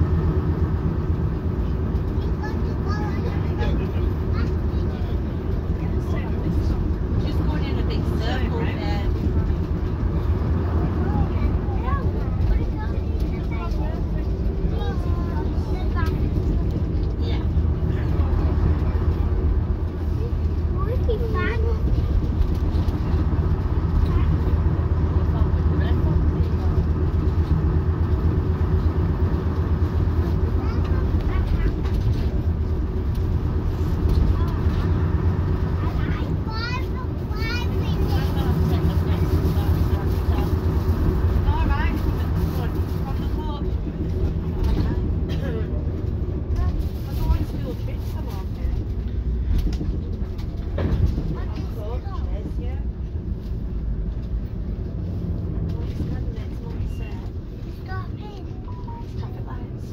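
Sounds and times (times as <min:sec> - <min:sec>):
bus diesel engine drone: 0:00.0 - 0:59.9
passengers chatting: 0:00.0 - 0:59.9.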